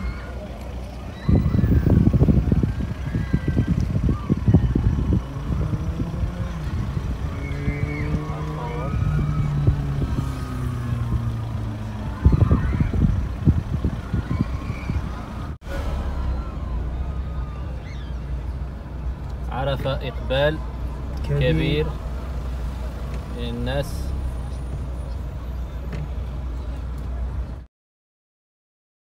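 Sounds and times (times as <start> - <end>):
car driving: 0.0 - 27.6
wind buffeting microphone: 1.0 - 15.6.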